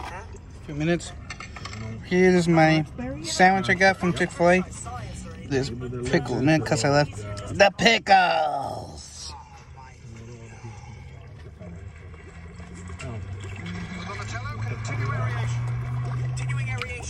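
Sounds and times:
muffled voices: 0.0 - 17.0
low hummed tone: 8.3 - 17.0.

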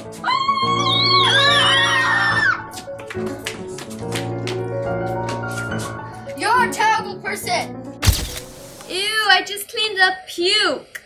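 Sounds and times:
high-pitched scream of fright: 0.2 - 2.6
background music with beat: 2.6 - 6.2.

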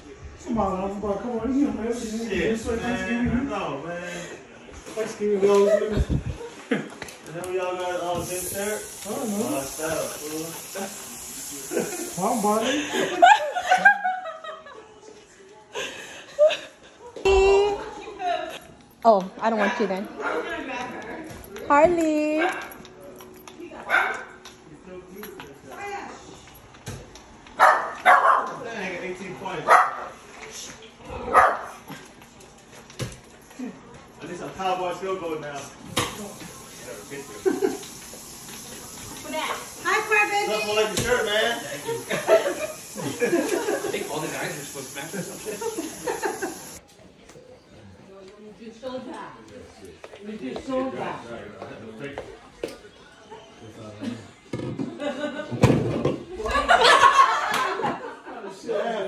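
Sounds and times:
voices in a room: 0.0 - 59.0
dog barking: 23.9 - 24.4, 27.6 - 28.6, 29.6 - 30.2, 31.3 - 31.8.

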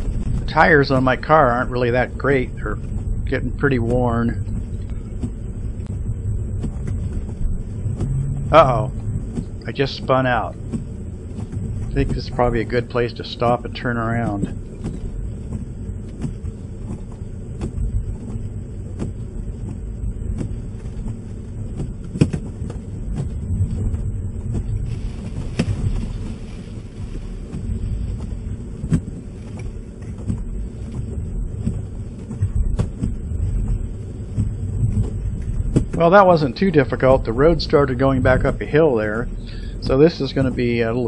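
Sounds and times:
knocks and clicks: 0.0 - 26.1, 27.5 - 36.2
car engine and tyres on snow: 0.0 - 41.0
snow hissing onto windshield: 24.8 - 28.0.

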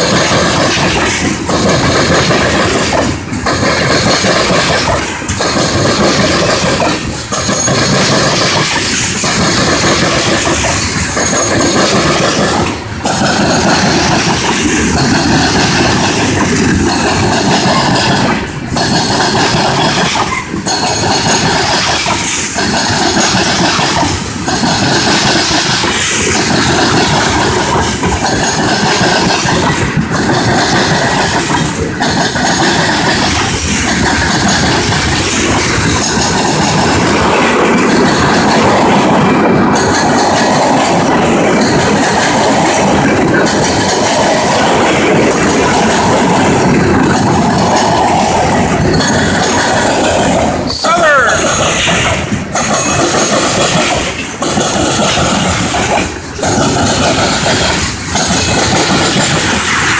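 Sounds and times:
freight train wheels rattling: 0.0 - 59.9.

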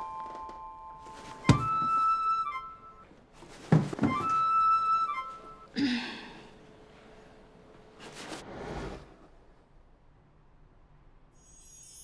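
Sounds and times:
ringing chime-like tone: 11.3 - 12.0.

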